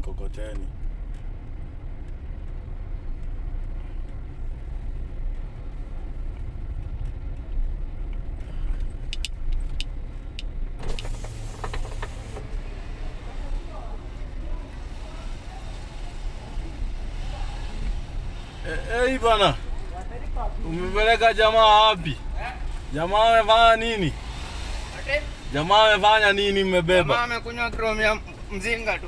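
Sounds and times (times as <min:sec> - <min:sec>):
car engine and road rumble: 0:00.0 - 0:29.0
sharp clicks: 0:06.8 - 0:12.5.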